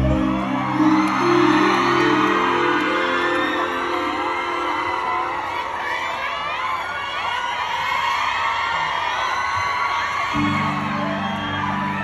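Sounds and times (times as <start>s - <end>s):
low steady music chord: 0.0s - 5.7s
crowd screaming and cheering: 0.0s - 12.0s.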